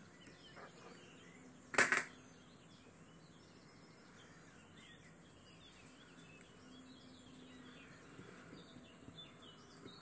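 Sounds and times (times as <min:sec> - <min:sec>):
bird chirps: 0:00.0 - 0:10.0.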